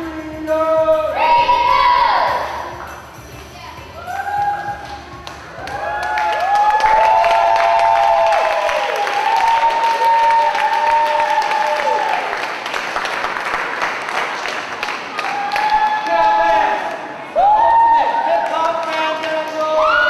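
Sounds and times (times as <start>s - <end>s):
audience applauding: 5.2s - 20.0s
cheering voices: 5.6s - 12.7s, 15.0s - 20.0s.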